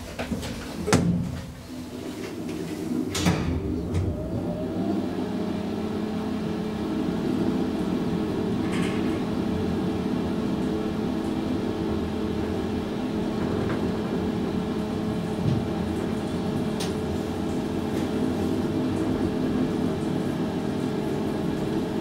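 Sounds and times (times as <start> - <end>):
elevator machine hum: 0.7 - 22.0.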